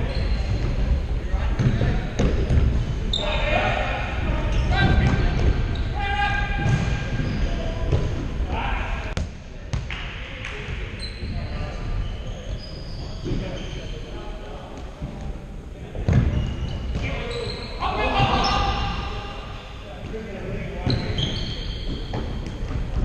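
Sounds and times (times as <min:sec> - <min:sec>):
shoes squeaking: 0:16.3 - 0:19.6, 0:20.8 - 0:23.0
players calling out: 0:17.0 - 0:19.8.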